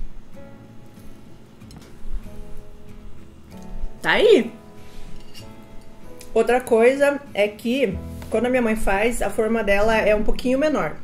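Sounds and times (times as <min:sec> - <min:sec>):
guitar background music: 0:00.0 - 0:11.0.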